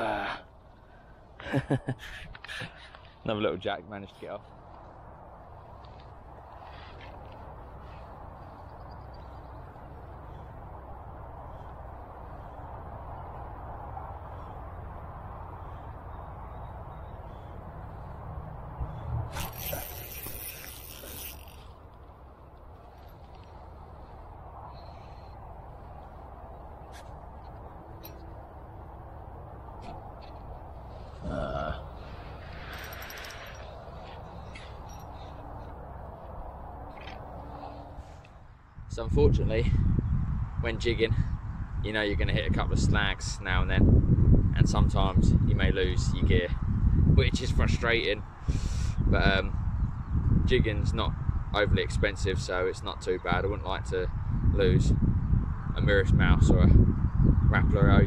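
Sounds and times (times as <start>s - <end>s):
dry reeds rustling and crackling: 19.4s - 24.2s.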